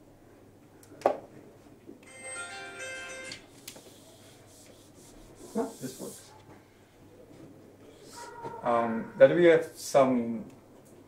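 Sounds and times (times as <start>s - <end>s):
marker scraping on whiteboard: 3.6s - 6.4s.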